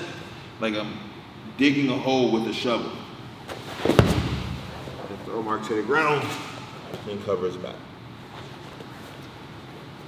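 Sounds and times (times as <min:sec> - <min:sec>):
body thudding on mat: 0:03.8 - 0:05.0.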